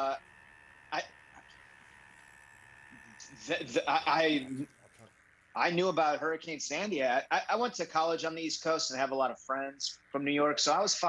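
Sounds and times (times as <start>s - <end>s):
faint steady hiss: 0.0s - 11.0s
thin high tone: 0.0s - 11.0s.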